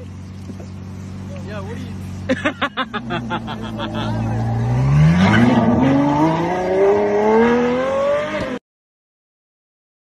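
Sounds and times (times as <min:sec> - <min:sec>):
car engine accelerating hard: 0:00.0 - 0:08.6.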